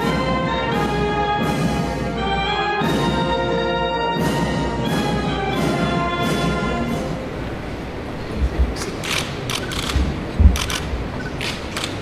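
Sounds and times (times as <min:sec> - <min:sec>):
hall noise: 0:00.0 - 0:12.0
low thumps: 0:07.2 - 0:11.2
camera shutters clicking: 0:08.8 - 0:12.0.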